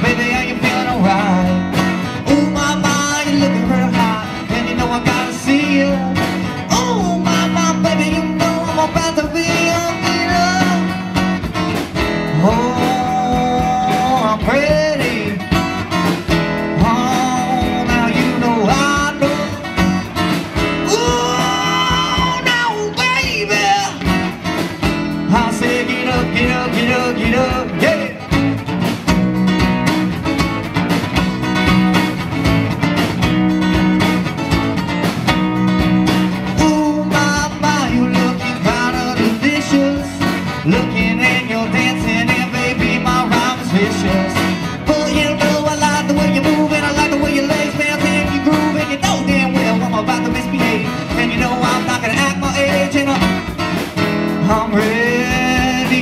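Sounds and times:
man singing: 0.0 - 28.6, 36.4 - 56.0
live band playing: 0.0 - 56.0.

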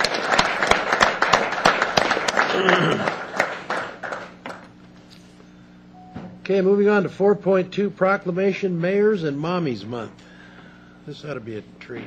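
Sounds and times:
people applauding: 0.0 - 4.7.

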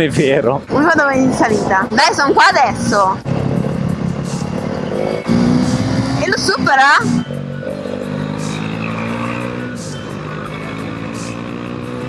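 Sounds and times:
wind noise: 0.6 - 4.2
motorcycle engine running: 0.7 - 12.0.

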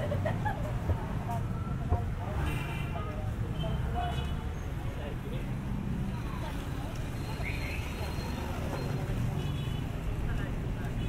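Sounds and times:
people talking: 0.0 - 9.4
motorcycle engines rumbling: 0.0 - 11.0.

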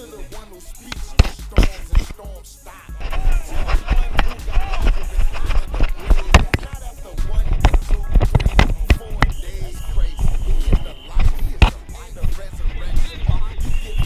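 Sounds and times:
music with steady low beat: 0.0 - 14.0.

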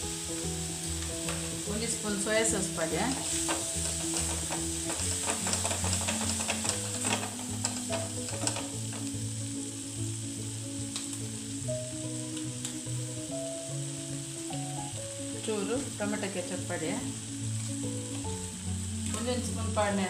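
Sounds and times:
vegetables sizzling in a frying pan: 0.0 - 20.0
spatula scraping a pan: 2.5 - 9.2.

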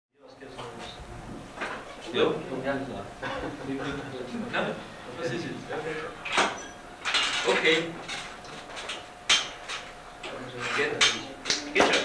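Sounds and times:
faint indistinct voices: 10.2 - 12.0.

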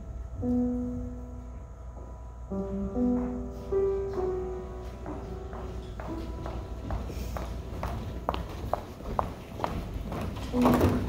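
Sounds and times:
footsteps on wooden floor: 1.9 - 11.0.

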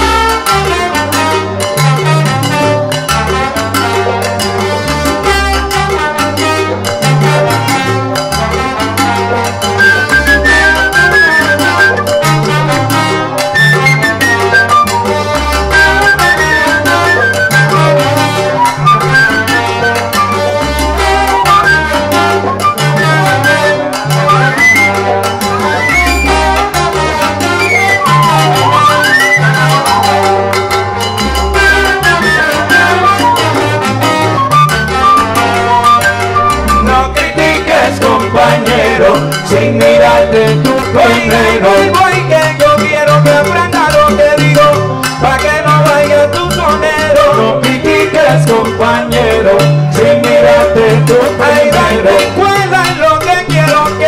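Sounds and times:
horn melody gliding in pitch: 0.0 - 37.8
salsa band playing: 0.0 - 54.0.

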